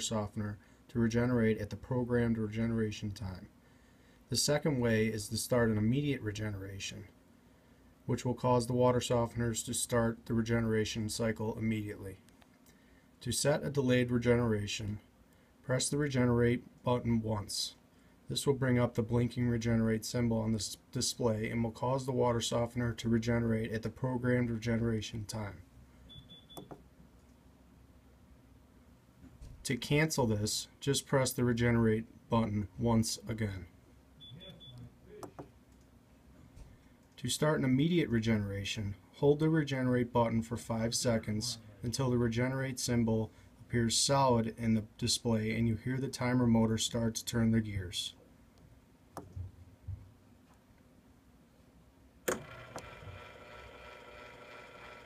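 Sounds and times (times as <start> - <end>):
motor whirring hum: 52.3 - 55.0
timer motor click: 52.3 - 55.0.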